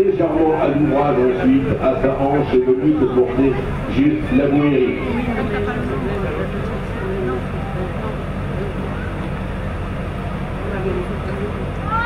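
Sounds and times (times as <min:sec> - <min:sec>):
faint voices murmuring: 0:00.0 - 0:12.0
steady low hum: 0:00.0 - 0:12.0.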